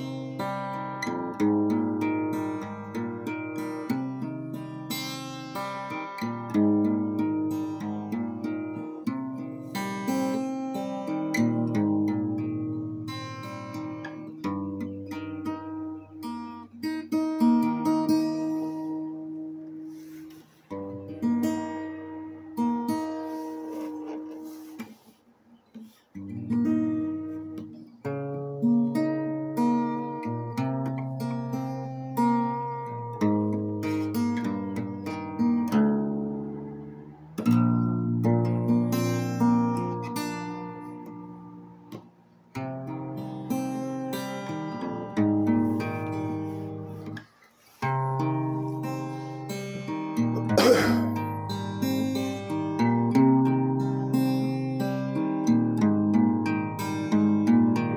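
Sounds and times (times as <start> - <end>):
acoustic guitar: 0.0 - 57.9.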